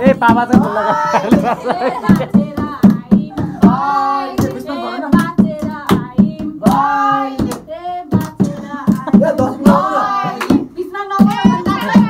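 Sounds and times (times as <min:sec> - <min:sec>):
group singing together: 0:00.0 - 0:12.0
hands clapping in steady beat: 0:00.0 - 0:12.0.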